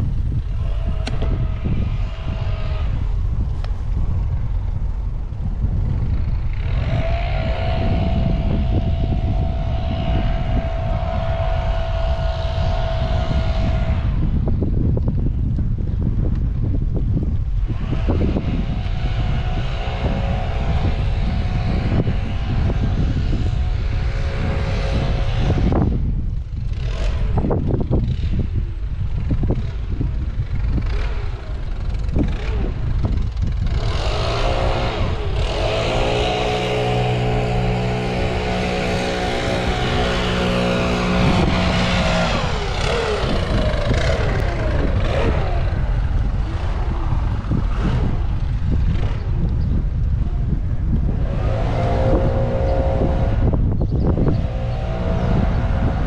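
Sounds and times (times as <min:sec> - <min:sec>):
droning hum: 0:00.0 - 0:56.0
wind on microphone: 0:00.0 - 0:56.0.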